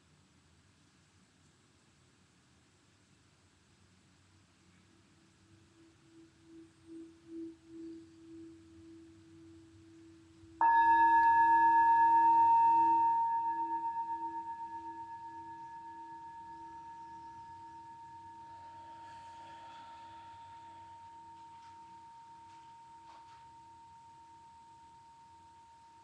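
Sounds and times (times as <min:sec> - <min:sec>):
singing bowl rim rubbed humming: 0:06.1 - 0:26.0
singing bowl struck ringing: 0:10.6 - 0:26.0.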